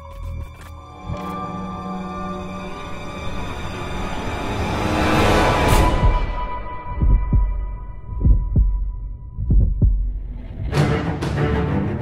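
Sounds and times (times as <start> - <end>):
music: 0.0 - 12.0
heartbeat thumps: 6.0 - 10.8.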